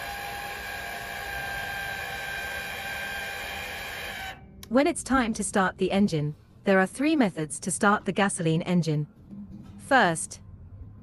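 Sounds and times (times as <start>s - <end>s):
electric actuator whine: 0.0s - 4.6s.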